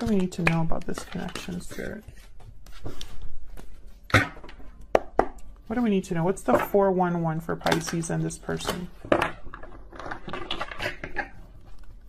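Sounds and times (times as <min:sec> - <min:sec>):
cards being shuffled: 0:00.0 - 0:03.8.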